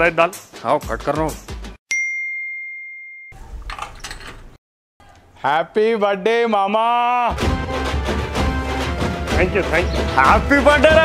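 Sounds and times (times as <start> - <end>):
bell ding: 1.9 - 3.4.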